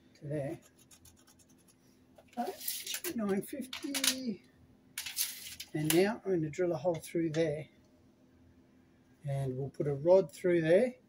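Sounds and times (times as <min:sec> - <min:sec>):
pencil scratching on wall: 0:00.5 - 0:01.8.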